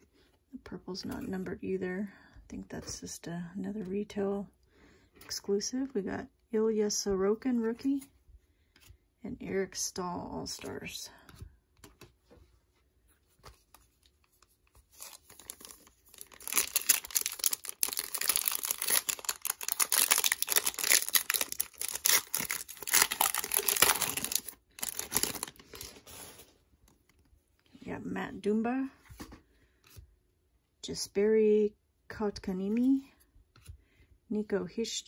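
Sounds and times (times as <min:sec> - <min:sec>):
foil wrapper ripping and crinkling: 0:14.9 - 0:26.3.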